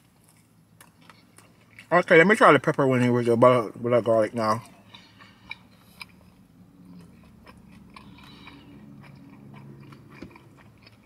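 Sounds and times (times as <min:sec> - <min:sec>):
chewing food: 0:00.0 - 0:02.8, 0:04.0 - 0:11.0
man speaking: 0:01.9 - 0:04.7.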